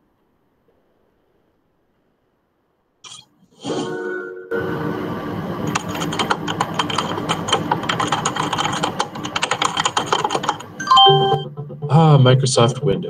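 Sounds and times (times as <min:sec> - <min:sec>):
keyboard typing clicks: 0:05.7 - 0:11.4
background music: 0:10.3 - 0:13.0
short chime: 0:10.8 - 0:11.5.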